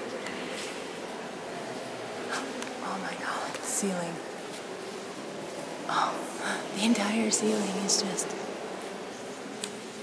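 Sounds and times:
steady room hiss: 0.0s - 10.0s
whispered voices: 0.0s - 10.0s.

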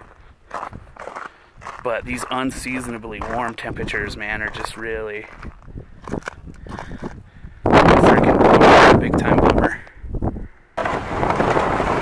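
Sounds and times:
footsteps on wet ice and mud: 0.0s - 7.3s
man talking: 1.8s - 5.4s, 8.0s - 9.9s.

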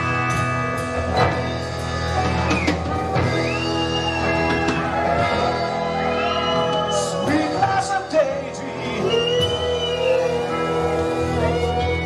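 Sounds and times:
bass guitar: 0.0s - 12.0s
drum kit: 0.0s - 12.0s
electric guitars: 0.0s - 12.0s
keyboards: 0.0s - 12.0s.

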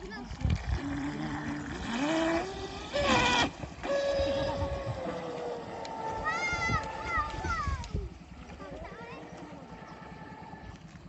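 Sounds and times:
electric motor whine: 0.5s - 7.5s.

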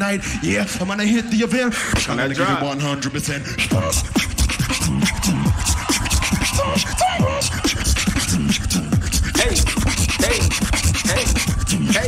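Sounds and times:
person beatboxing: 3.5s - 12.0s.

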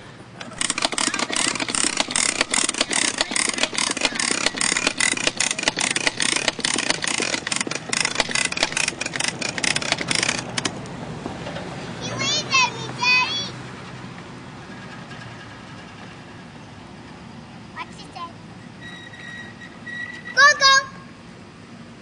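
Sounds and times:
plastic wheels rolling on asphalt: 0.4s - 13.4s.

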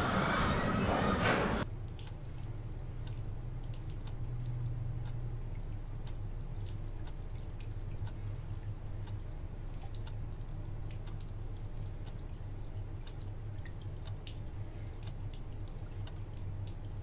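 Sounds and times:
noisy background: 0.0s - 1.6s
steady low hum: 0.0s - 17.0s
water drips: 1.6s - 17.0s.

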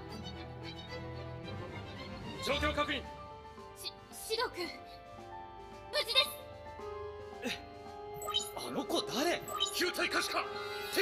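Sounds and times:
held-note background music: 0.0s - 11.0s.

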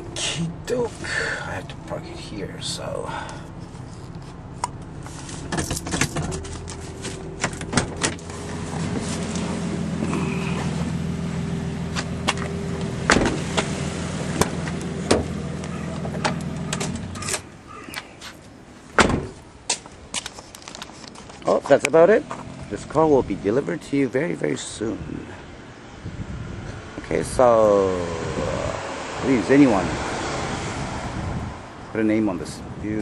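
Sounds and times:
car engine idling: 0.0s - 18.1s
car door thump: 13.1s - 13.4s, 19.0s - 19.4s.

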